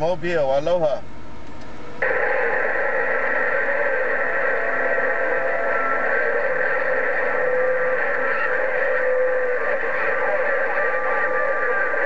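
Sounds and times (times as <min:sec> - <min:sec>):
radio static hiss: 0:01.8 - 0:12.0.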